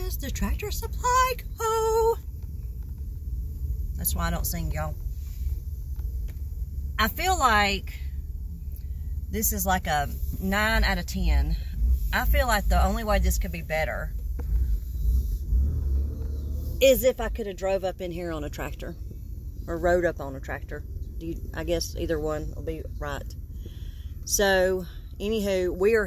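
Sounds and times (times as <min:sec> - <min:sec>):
car rumble from inside: 0:00.0 - 0:26.0.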